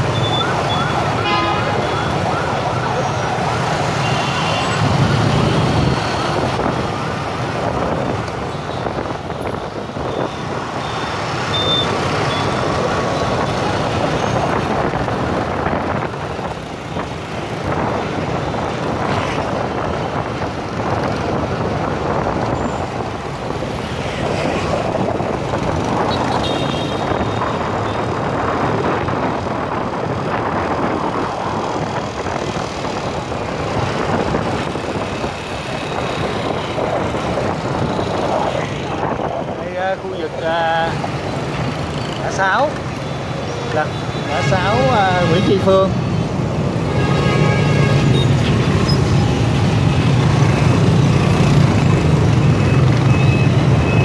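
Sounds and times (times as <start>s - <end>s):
road noise: 0.0s - 54.0s
scooter and car traffic: 0.0s - 54.0s.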